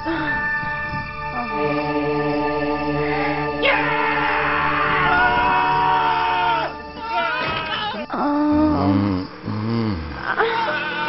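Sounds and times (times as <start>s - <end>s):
background music: 0.0s - 11.0s
men screaming in fright: 3.1s - 8.7s, 9.8s - 11.0s.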